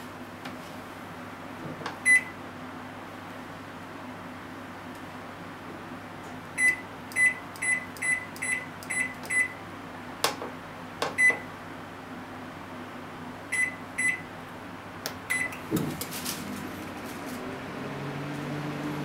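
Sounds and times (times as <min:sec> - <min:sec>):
microwave button beeps: 0:02.0 - 0:02.4, 0:06.6 - 0:09.6, 0:11.1 - 0:11.5, 0:13.5 - 0:14.3, 0:15.3 - 0:15.6.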